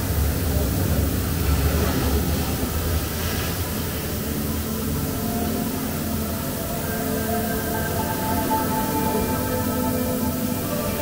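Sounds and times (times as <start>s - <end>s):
faint sustained musical tones: 0.0s - 11.0s
low rumbling ambience: 0.0s - 11.0s.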